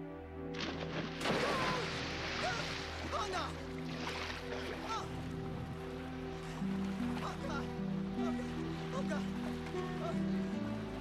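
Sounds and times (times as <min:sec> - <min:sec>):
orchestral film score chords: 0:00.0 - 0:11.0
splash into sea: 0:00.6 - 0:03.2
churning rushing water: 0:00.6 - 0:11.0.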